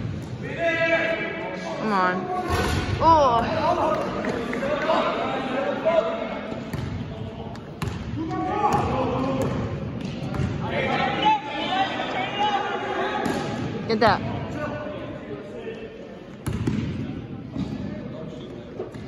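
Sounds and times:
basketball bouncing on gym floor: 0:07.8 - 0:10.6
people calling out in echoing hall: 0:10.6 - 0:15.1.

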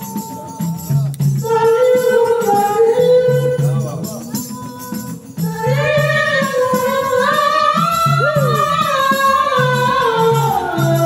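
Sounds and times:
hand drum rhythm: 0:00.0 - 0:11.0.

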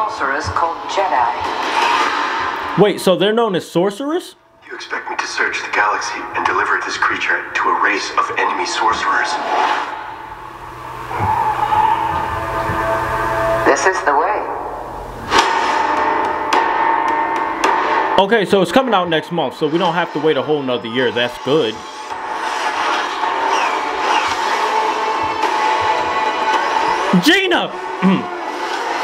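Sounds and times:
high drone: 0:04.9 - 0:29.0
trailer music: 0:09.4 - 0:19.0, 0:21.4 - 0:29.0
low thuds: 0:10.7 - 0:13.6.

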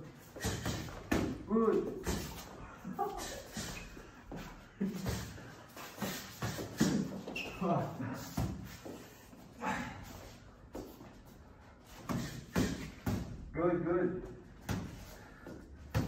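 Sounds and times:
boxing gloves smacking: 0:00.3 - 0:01.4.

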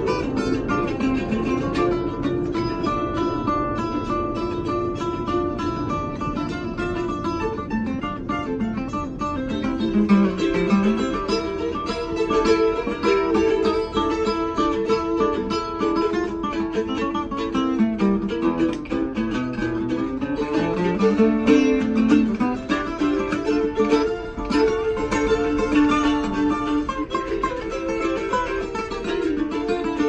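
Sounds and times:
acoustic guitar strumming: 0:00.0 - 0:30.0
mandolin picking quick notes: 0:00.0 - 0:30.0.

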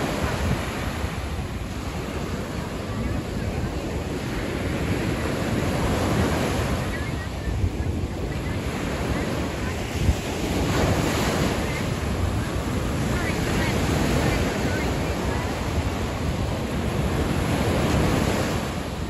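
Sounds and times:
waves breaking on beach: 0:00.0 - 0:19.0
wind on microphone: 0:00.0 - 0:19.0.

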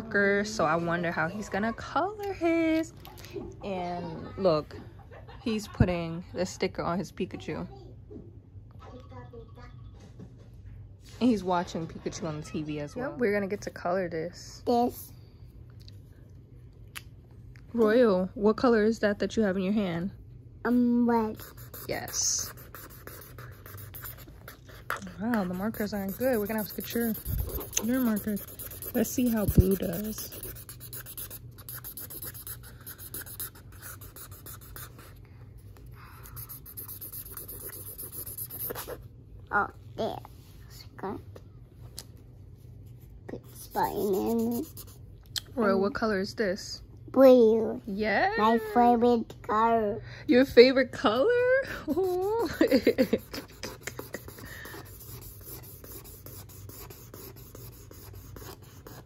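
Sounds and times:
marker scribbling on paper: 0:21.1 - 0:35.2, 0:36.2 - 0:39.0, 0:43.3 - 0:45.0, 0:51.8 - 0:59.0.

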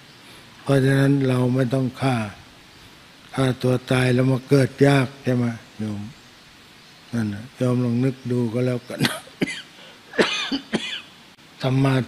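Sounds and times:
man coughing: 0:09.0 - 0:11.1.

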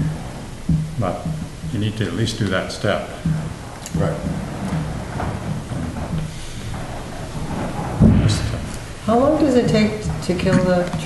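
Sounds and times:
low rumbling room noise: 0:00.0 - 0:11.0.

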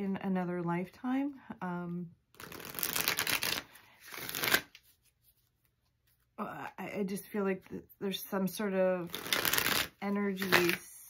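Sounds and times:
cards being shuffled: 0:02.3 - 0:06.3, 0:09.0 - 0:10.9.

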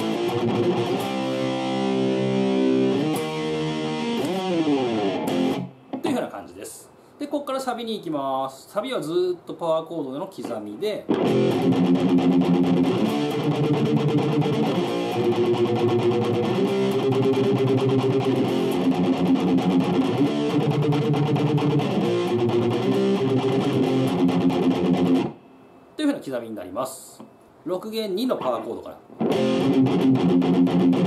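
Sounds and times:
distorted electric guitar power chords: 0:00.0 - 0:06.0, 0:11.1 - 0:25.4, 0:29.2 - 0:31.0.

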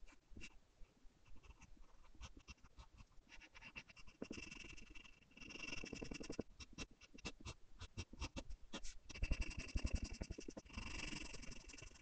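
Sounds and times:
pencil scratching on paper: 0:01.2 - 0:12.0.

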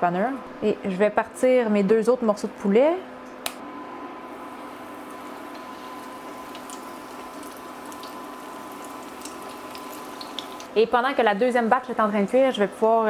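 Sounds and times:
faint steady hum: 0:00.0 - 0:13.0
chicken deep-frying in oil: 0:04.3 - 0:12.8.

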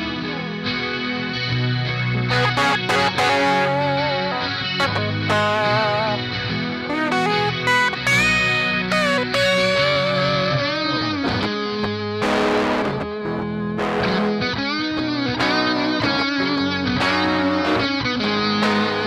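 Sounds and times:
electric guitars playing rock: 0:00.0 - 0:19.0.

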